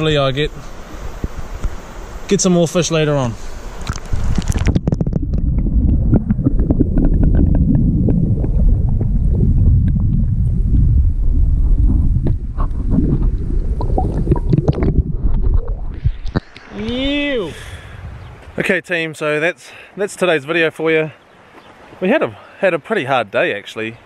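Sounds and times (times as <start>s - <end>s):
small underwater clicks: 3.8s - 7.8s
muffled underwater river rumble: 3.8s - 18.6s.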